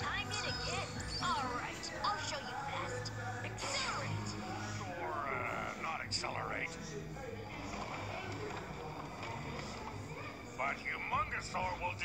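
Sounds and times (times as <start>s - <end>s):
cartoon music from television: 0.0s - 12.0s.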